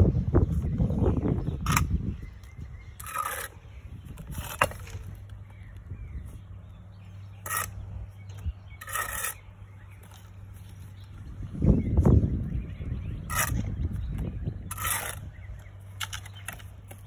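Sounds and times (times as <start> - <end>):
trowel scraping mortar on brick: 3.0 - 3.6, 4.2 - 5.1, 7.4 - 7.8, 8.8 - 9.5, 13.2 - 13.8, 14.6 - 15.4.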